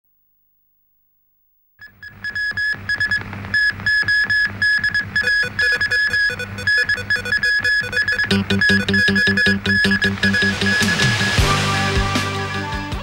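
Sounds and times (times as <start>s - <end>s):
short synthesizer beeps: 2.3s - 11.4s
electronic news theme music: 6.5s - 12.2s.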